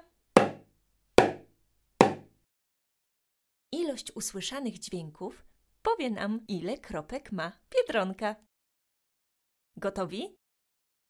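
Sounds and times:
small drum struck with beater: 0:00.4 - 0:00.6, 0:01.2 - 0:01.4, 0:02.0 - 0:02.3.

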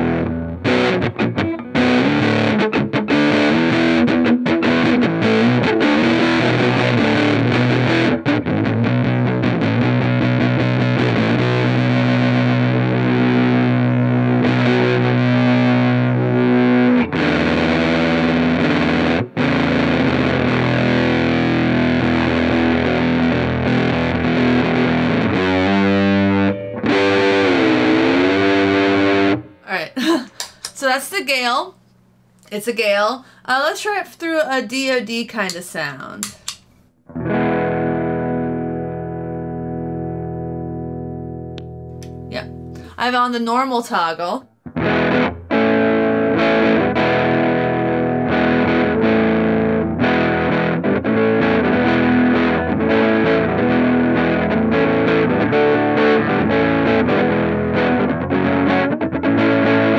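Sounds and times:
distorted electric guitar: 0:00.0 - 0:30.6, 0:36.2 - 0:43.0, 0:44.6 - 0:59.9.

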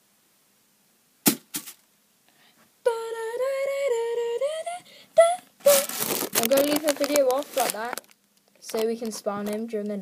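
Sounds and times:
boy humming a held note: 0:02.9 - 0:05.9.

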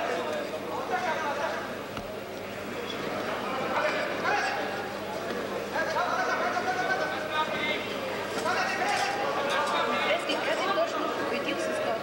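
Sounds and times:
indistinct chatter in sports hall: 0:00.0 - 0:12.0.

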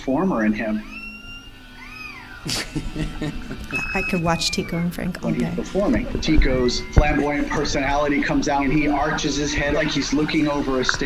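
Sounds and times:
parrot whistling: 0:00.4 - 0:11.0
parrot harsh call: 0:00.8 - 0:02.5.

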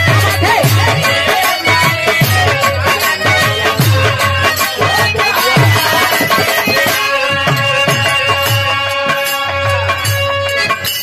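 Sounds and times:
drum strikes: 0:00.0 - 0:11.0.

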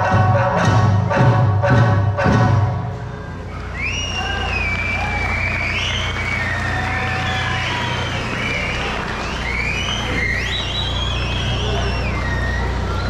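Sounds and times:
high piercing finger whistle: 0:03.1 - 0:13.0.

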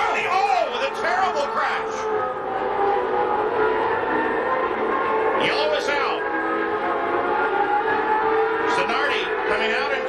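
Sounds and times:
race car engines whining: 0:00.0 - 0:10.0.

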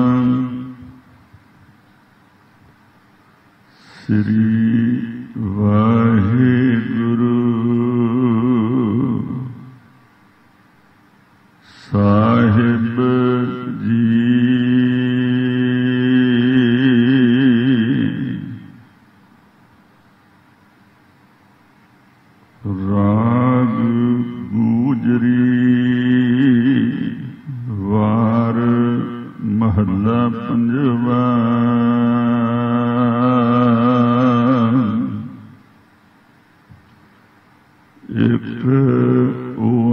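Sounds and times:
man chanting: 0:00.0 - 0:01.0, 0:03.8 - 0:09.9, 0:11.7 - 0:18.8, 0:22.6 - 0:35.6, 0:38.0 - 0:39.9
person singing slow melody: 0:00.0 - 0:01.4, 0:03.7 - 0:10.0, 0:11.6 - 0:19.0, 0:22.6 - 0:35.6, 0:38.0 - 0:39.9.

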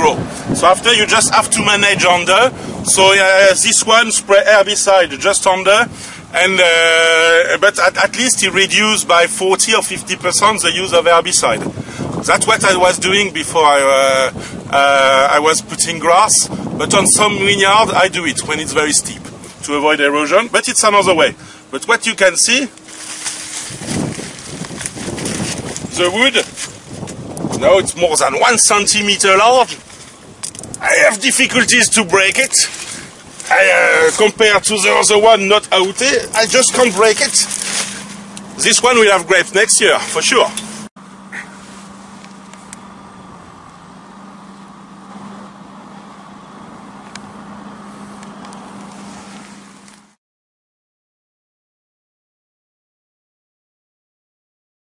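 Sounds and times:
low engine-like hum: 0:00.0 - 0:50.2
vine leaves rustling and crackling: 0:21.7 - 0:50.2.

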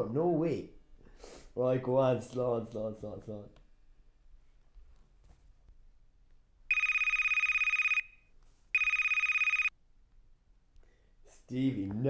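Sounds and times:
phone ringing electronic trill: 0:06.7 - 0:08.2, 0:08.8 - 0:09.7.

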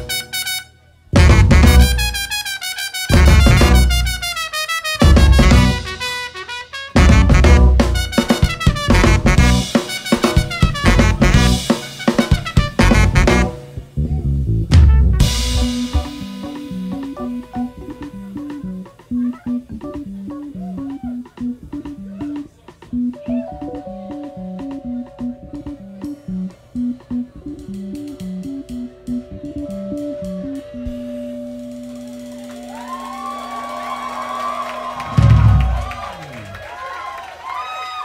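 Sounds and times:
live jazz band playing: 0:00.0 - 0:36.0
repeating bass line: 0:01.2 - 0:02.2, 0:03.1 - 0:04.2, 0:05.0 - 0:06.0, 0:07.0 - 0:09.8, 0:10.7 - 0:11.7, 0:12.6 - 0:33.7
crowd cheering: 0:31.8 - 0:38.0.

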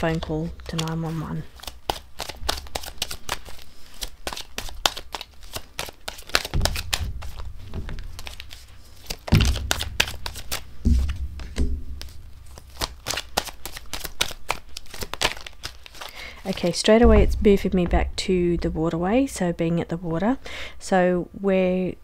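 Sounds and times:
cards shuffled by hand: 0:00.0 - 0:16.8
dull low thumps: 0:09.3 - 0:12.5, 0:16.9 - 0:20.3.

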